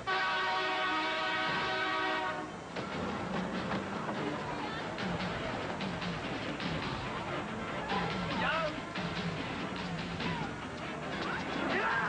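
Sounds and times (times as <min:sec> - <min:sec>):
bus horn blaring: 0:00.0 - 0:02.6.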